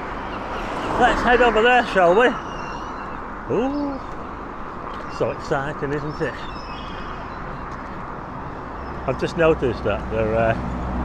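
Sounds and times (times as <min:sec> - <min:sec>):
distant traffic hum: 0:00.0 - 0:11.0.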